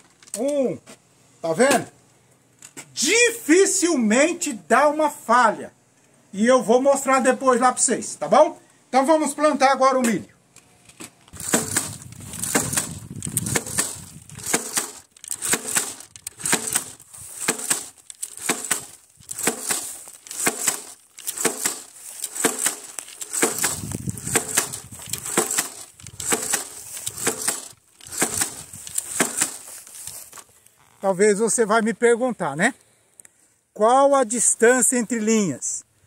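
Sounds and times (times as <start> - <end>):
jab planter clacking into soil: 11.3 - 30.2.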